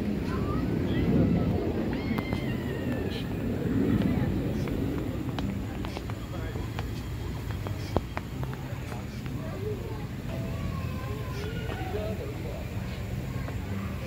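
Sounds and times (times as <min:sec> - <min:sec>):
murmur of voices: 0:00.0 - 0:14.0.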